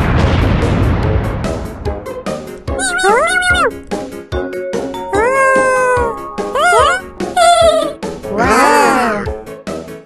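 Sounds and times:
bouncy children's music: 2.4 - 10.0
cartoon character voice: 2.7 - 3.8, 5.1 - 9.3.

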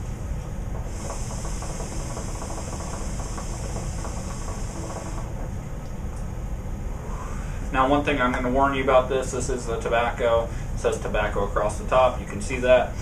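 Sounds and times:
water bubbling in hookah: 0.6 - 5.7
airy hiss of inhaling: 0.9 - 5.2.

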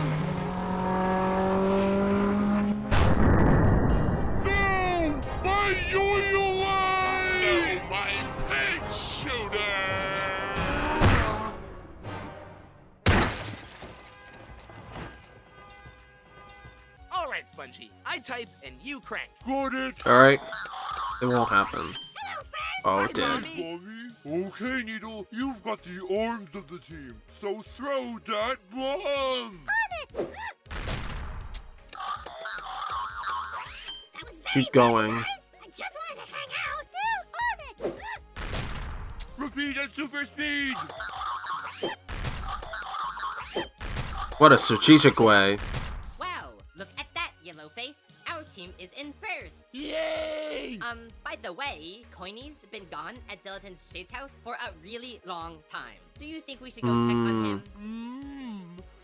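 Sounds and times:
background music: 0.0 - 59.0
cartoon crash with shattering glass: 13.0 - 14.1
debris clinking and rattling: 13.1 - 15.9
cartoon fast typing on keypad: 32.0 - 33.9, 40.8 - 45.0.

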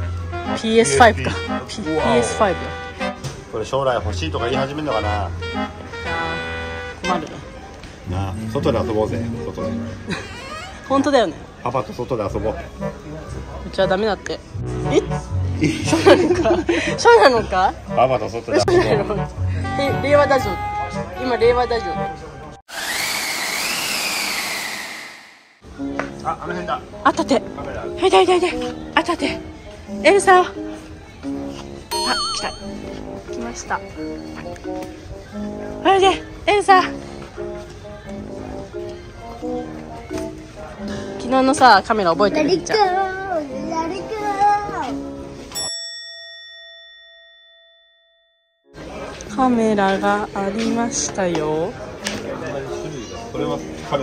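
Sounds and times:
bell-like ding: 31.9 - 32.9, 45.5 - 48.8.

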